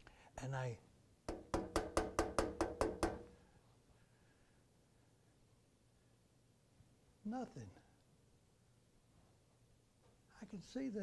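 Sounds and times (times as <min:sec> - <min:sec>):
knocking on a door: 0:01.3 - 0:03.3.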